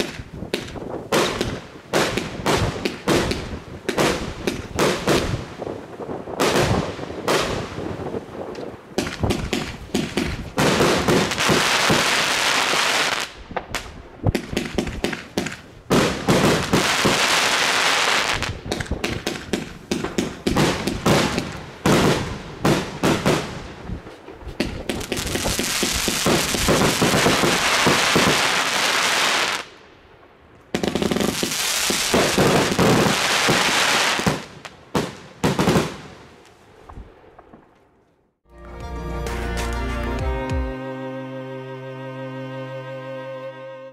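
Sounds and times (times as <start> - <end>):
firework launch shots and bursts: 0.0 - 29.7, 30.8 - 36.4
firework crackling: 0.0 - 29.8, 30.7 - 37.6.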